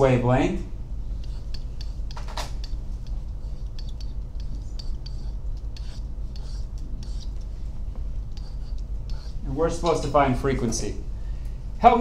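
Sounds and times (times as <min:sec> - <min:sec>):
steady low hum: 0:00.0 - 0:12.0
stylus scratching stroke: 0:00.8 - 0:10.4
stylus clicking on pen tablet: 0:01.2 - 0:07.5.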